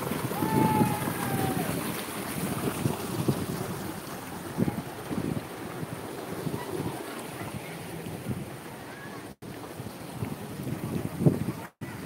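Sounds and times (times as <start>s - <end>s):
stream running over boulders: 0.0s - 12.0s
wind buffeting microphone: 0.0s - 12.0s.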